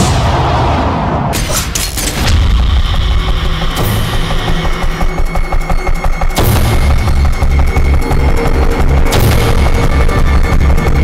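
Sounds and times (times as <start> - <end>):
pulsing low rhythm: 2.4 - 11.0.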